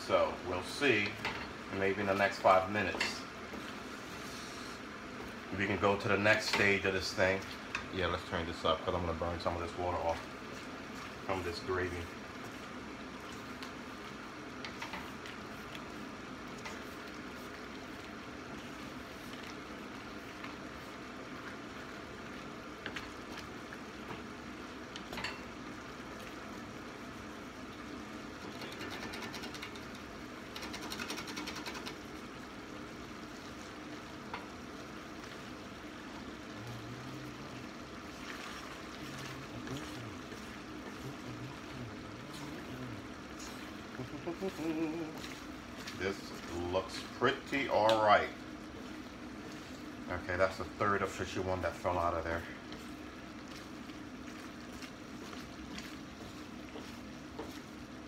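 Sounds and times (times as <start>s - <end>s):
bubbling sizzle in a skillet: 0.0s - 58.0s.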